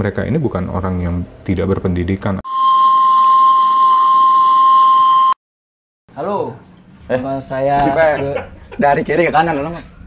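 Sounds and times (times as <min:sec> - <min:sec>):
high steam whistle: 0:02.5 - 0:05.4.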